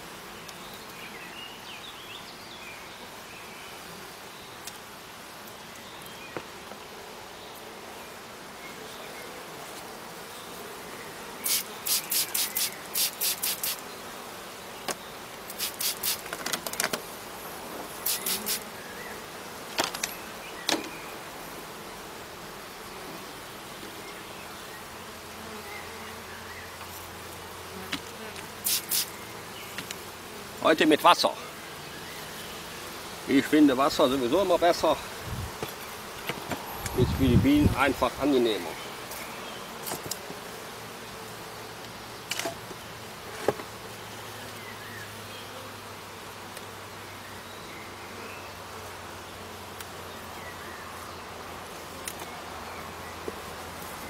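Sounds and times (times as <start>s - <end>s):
honeybees buzzing: 0.0s - 54.0s
spray bottle squirts: 11.4s - 13.8s, 15.5s - 16.4s, 18.0s - 18.6s, 28.6s - 29.2s.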